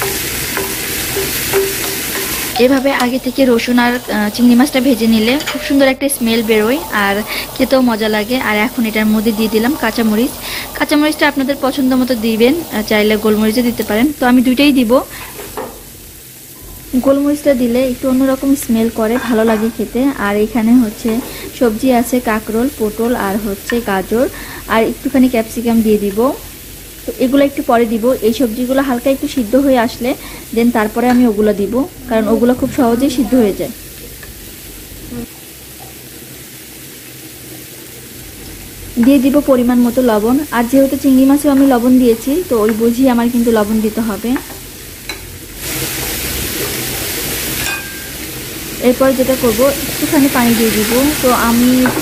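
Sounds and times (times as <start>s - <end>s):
prawns sizzling in oil: 0.0s - 52.0s
woman speaking: 2.6s - 15.1s, 17.0s - 26.4s, 27.1s - 33.8s, 39.0s - 44.4s, 48.8s - 52.0s.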